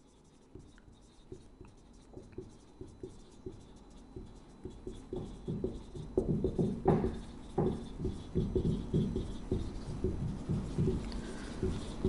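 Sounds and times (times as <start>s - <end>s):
marker pen writing on whiteboard: 0.0s - 12.0s.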